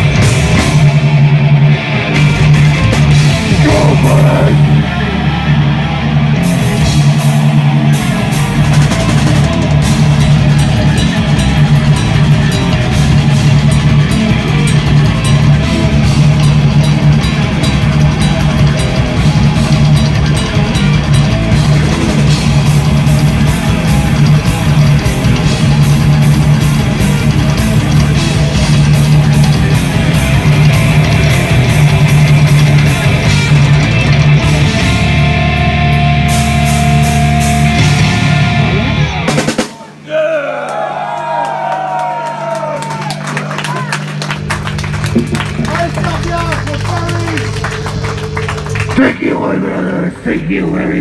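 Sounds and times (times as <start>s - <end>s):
distorted electric guitar: 0.0s - 39.6s, 44.0s - 51.0s
drum and cymbal hits: 0.0s - 40.0s, 44.1s - 49.0s.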